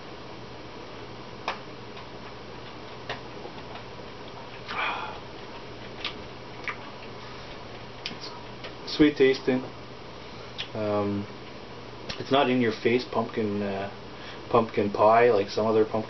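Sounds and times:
low steady hum: 0.0s - 16.0s
lips smacking: 1.5s - 8.8s, 10.6s - 10.8s
breathy rush: 4.7s - 5.3s.

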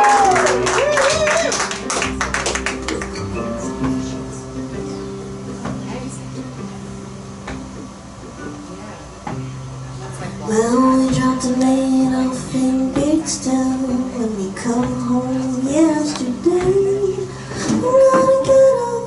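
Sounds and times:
picked and strummed chords: 0.0s - 19.0s.

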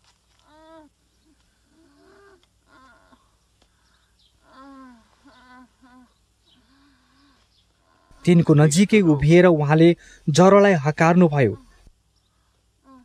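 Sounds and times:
elderly woman moaning: 1.7s - 3.3s, 4.4s - 8.3s.

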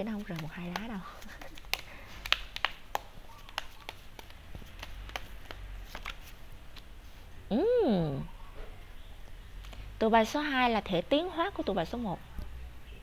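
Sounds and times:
cards being shuffled: 0.0s - 6.9s.

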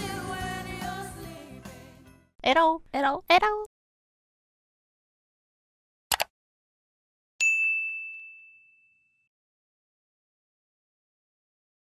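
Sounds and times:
high bell ding: 7.4s - 9.3s.

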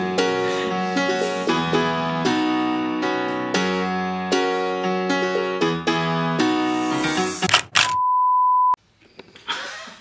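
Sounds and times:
keyboard music: 0.0s - 7.5s.

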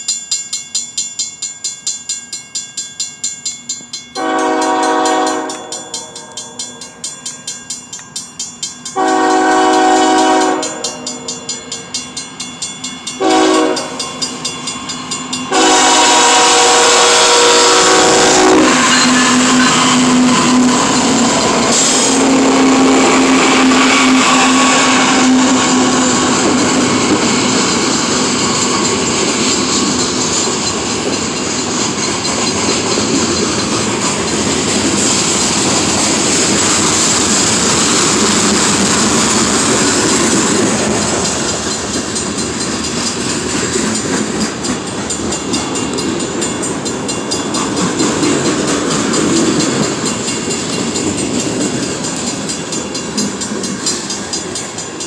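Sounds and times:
crossing bell ringing: 0.0s - 55.0s
freight cars clacking on rails: 3.7s - 55.0s
train air horn blasts: 4.2s - 6.6s, 9.0s - 11.1s, 13.2s - 14.0s, 15.5s - 26.5s.

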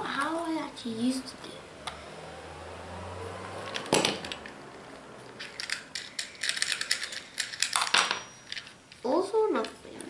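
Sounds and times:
plastic parts clicking and rattling: 5.4s - 9.8s.

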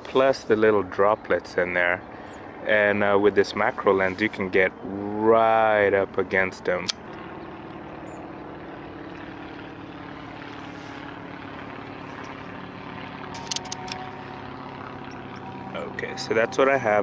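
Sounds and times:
distant engine drone: 0.0s - 17.0s
sharp clicks: 6.8s - 7.2s, 13.3s - 14.0s.

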